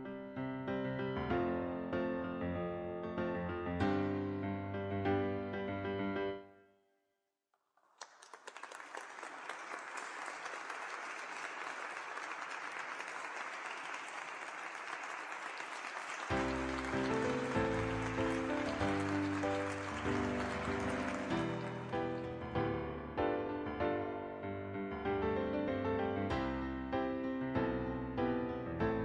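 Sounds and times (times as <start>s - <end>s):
piano music: 0.0s - 6.5s, 16.0s - 29.0s
audience applause: 7.7s - 22.5s.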